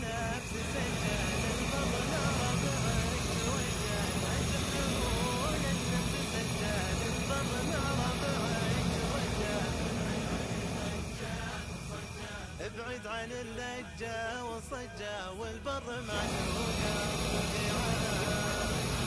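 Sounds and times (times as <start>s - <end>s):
gas stove flame hissing: 0.0s - 13.2s, 16.0s - 19.0s
indistinct voice: 0.0s - 19.0s.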